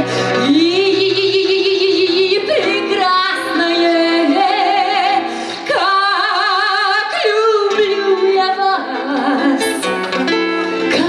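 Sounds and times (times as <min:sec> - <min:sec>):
guitar accompaniment: 0:00.0 - 0:11.0.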